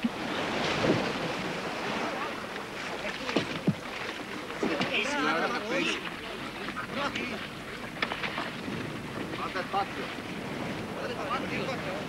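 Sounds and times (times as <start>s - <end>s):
surf washing onto beach: 0.0s - 12.0s
wind: 0.0s - 12.0s.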